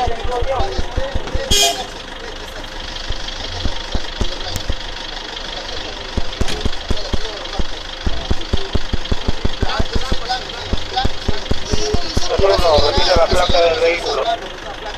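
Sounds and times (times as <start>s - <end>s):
engine idling: 0.0s - 14.9s
people talking: 0.0s - 14.9s.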